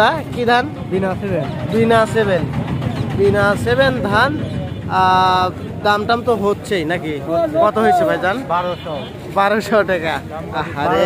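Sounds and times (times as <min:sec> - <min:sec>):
men talking: 0:00.0 - 0:11.0.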